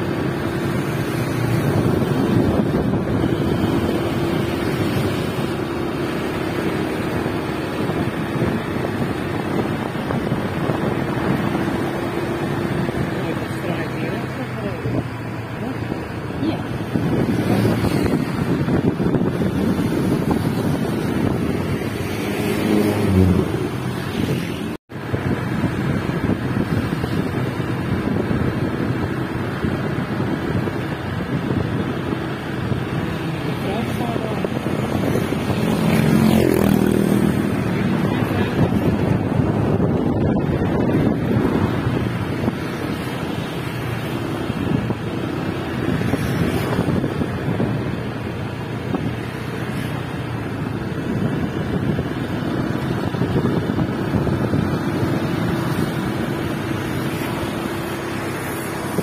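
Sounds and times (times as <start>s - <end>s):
wind rushing on microphone: 0.0s - 59.0s
scooter engine running: 25.5s - 59.0s.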